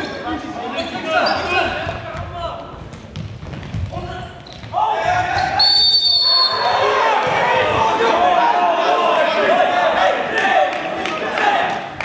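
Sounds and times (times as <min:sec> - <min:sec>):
players shouting: 0:04.7 - 0:12.0
referee's whistle blast: 0:05.4 - 0:06.8.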